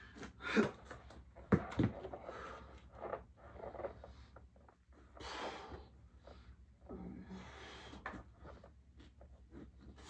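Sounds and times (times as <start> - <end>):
soft scraping on weight bench: 2.1 - 4.4.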